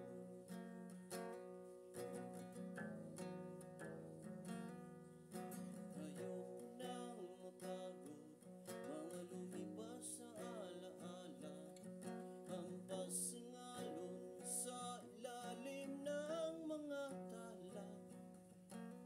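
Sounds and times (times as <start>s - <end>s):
acoustic guitar strumming: 0.0s - 19.0s
man singing: 5.6s - 18.2s.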